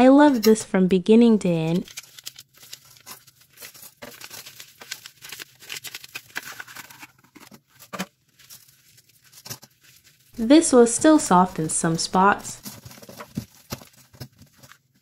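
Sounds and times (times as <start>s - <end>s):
dried paste crackling and crunching: 1.7s - 11.7s.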